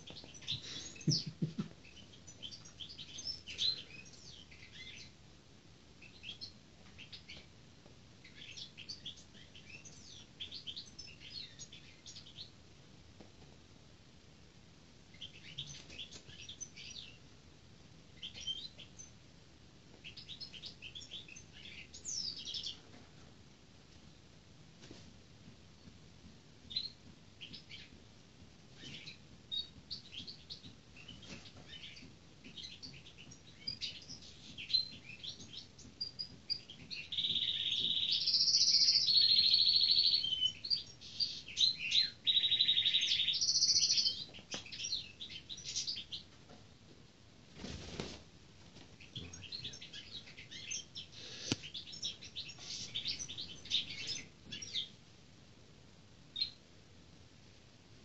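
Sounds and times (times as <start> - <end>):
finch twittering: 28.8 - 46.2.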